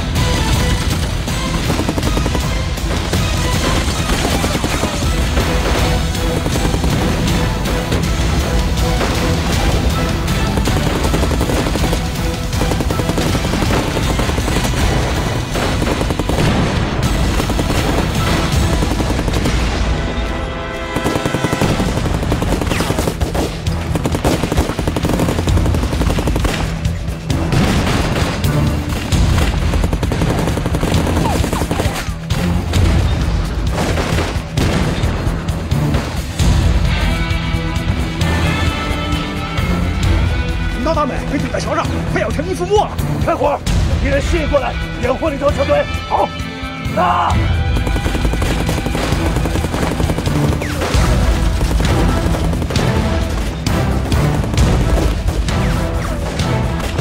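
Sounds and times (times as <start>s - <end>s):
dramatic background music: 0.0s - 57.0s
machine-gun fire: 0.4s - 8.1s, 8.9s - 20.0s, 20.8s - 32.3s, 47.6s - 55.9s
explosions: 12.6s - 20.1s, 27.4s - 31.5s.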